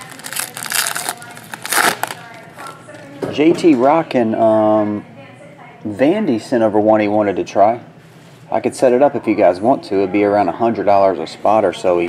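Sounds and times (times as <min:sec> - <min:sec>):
cards rustling: 0:00.0 - 0:02.7
foil wrapper crinkling: 0:00.0 - 0:03.1.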